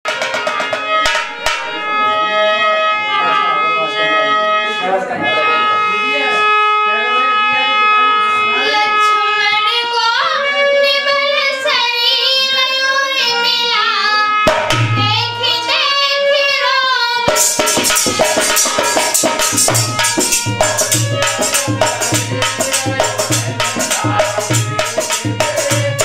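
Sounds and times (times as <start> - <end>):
held instrumental notes: 0.0 - 12.0, 13.0 - 26.0.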